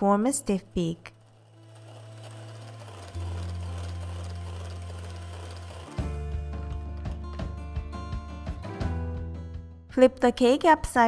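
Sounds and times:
background music with low notes: 0.0s - 11.0s
electric hand mixer whipping cream: 1.0s - 7.5s.

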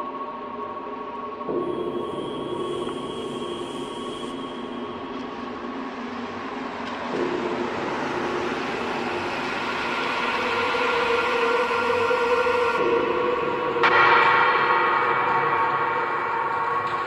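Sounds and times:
dark electronic drone music: 0.0s - 17.0s.

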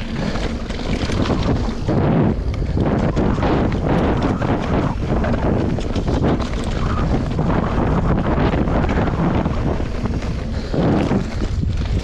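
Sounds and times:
bike knocks and rattles: 0.0s - 12.0s
tyres rolling on dirt: 0.0s - 12.0s
wind buffeting microphone: 0.0s - 12.0s.

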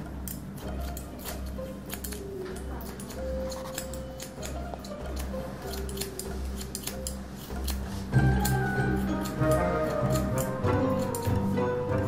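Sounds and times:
scissors snipping hair: 0.2s - 11.6s.

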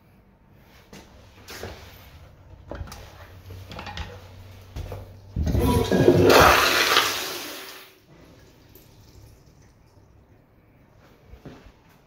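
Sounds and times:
toilet flushing: 5.2s - 10.4s.

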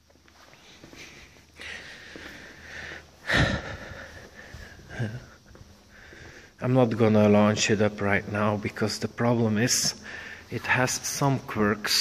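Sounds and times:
faint room noise: 0.0s - 12.0s
man breathing: 0.4s - 6.6s, 10.0s - 10.6s
man sighing: 1.6s - 6.1s.

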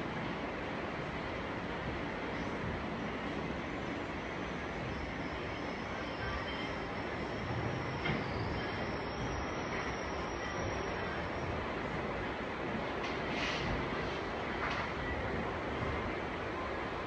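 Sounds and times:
steady background noise: 0.0s - 17.0s
faint high whine: 3.4s - 12.0s.

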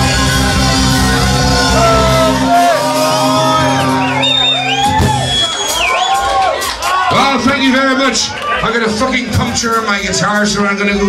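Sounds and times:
folk band playing: 0.0s - 7.0s
crowd whooping and shouting: 0.0s - 9.2s.

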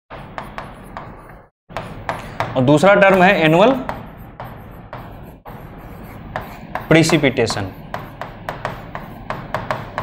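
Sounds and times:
pen scratching on board: 0.1s - 10.0s
pen tapping on board: 0.4s - 5.2s, 6.3s - 10.0s.

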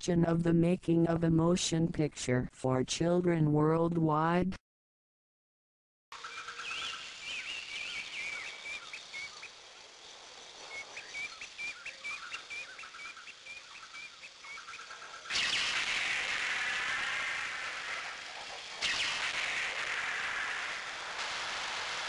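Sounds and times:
birds chirping: 6.2s - 19.3s
steady hiss: 6.2s - 22.0s.

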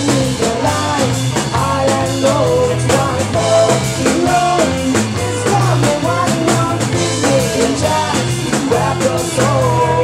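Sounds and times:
bass guitar: 0.0s - 10.0s
drum kit beat: 0.0s - 10.0s
electric guitars: 0.0s - 10.0s.

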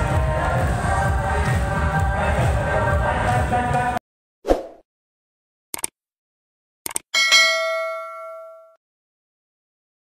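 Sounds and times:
bright metallic bell ding: 7.2s - 8.8s.

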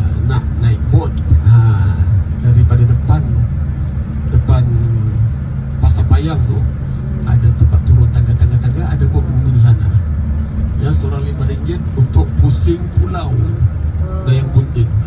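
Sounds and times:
man talking over a microphone: 0.0s - 3.6s, 4.3s - 5.2s, 5.8s - 10.1s, 10.7s - 15.0s
bus engine and road rumble: 0.0s - 15.0s.

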